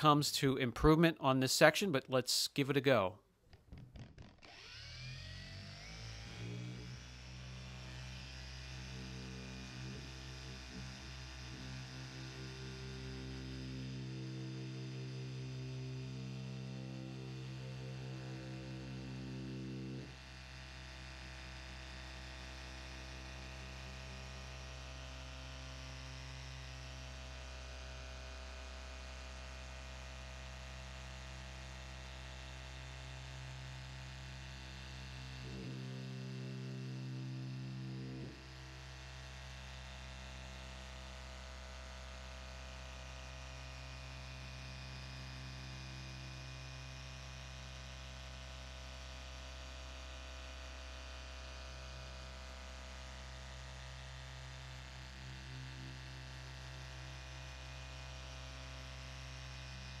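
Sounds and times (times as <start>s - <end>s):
polisher motor humming: 3.7s - 50.1s, 50.9s - 60.0s.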